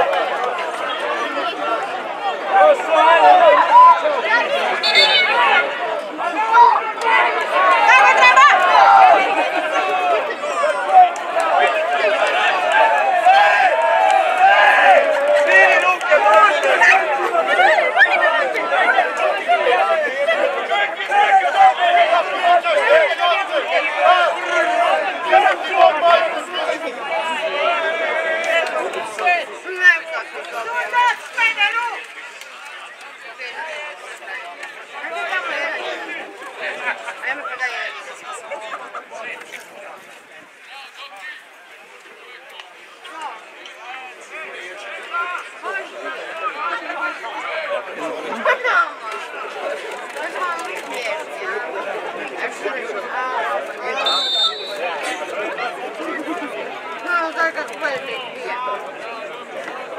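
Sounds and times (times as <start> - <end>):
people chattering and calling out: 0.0 - 59.9.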